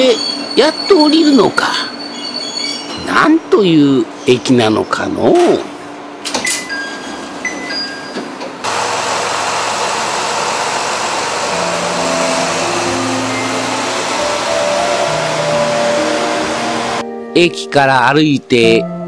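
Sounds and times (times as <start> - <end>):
diesel railcar engine noise: 0.0 - 17.0.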